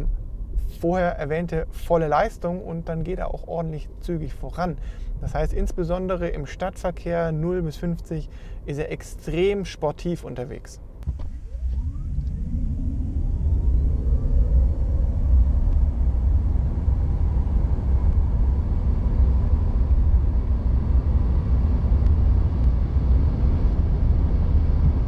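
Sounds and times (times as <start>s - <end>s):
road and wind noise rumble: 0.0s - 25.0s
electric motor whine: 11.0s - 25.0s.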